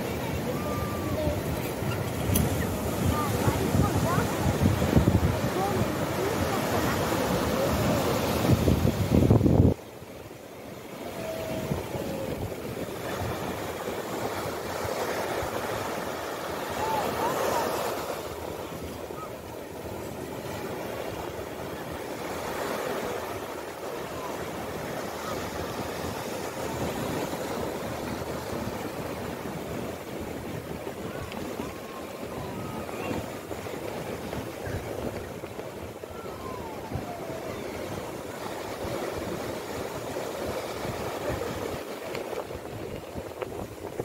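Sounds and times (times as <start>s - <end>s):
ocean surf washing on sand: 0.0s - 44.0s.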